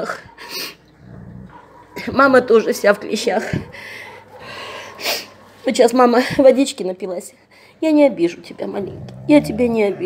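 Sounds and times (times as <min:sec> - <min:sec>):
dog growling: 0:00.0 - 0:05.5, 0:08.6 - 0:10.0.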